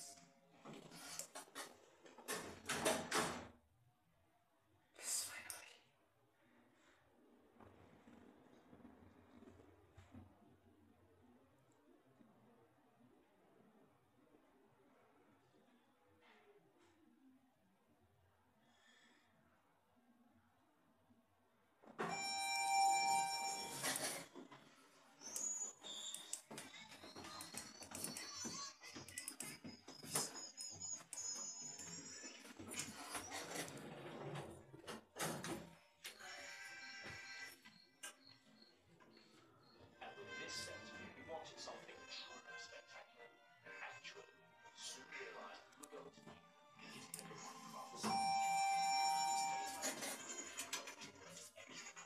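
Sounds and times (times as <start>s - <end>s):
elevator arrival chime: 22.1s - 24.2s, 48.0s - 49.9s.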